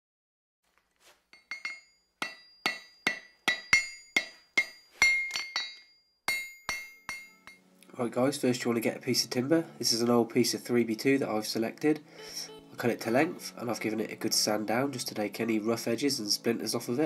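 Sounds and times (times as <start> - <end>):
screwdrivers clinking: 1.3 - 5.9.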